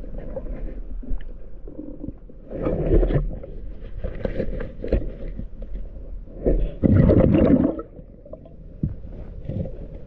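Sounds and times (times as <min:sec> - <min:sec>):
low rumble of water: 0:00.0 - 0:10.0
exhaled breath bubbling underwater: 0:06.7 - 0:08.5.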